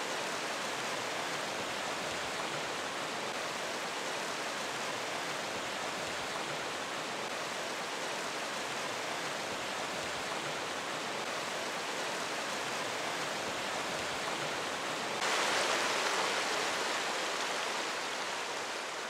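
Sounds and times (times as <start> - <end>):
stream rushing over rocks: 0.0 - 19.0.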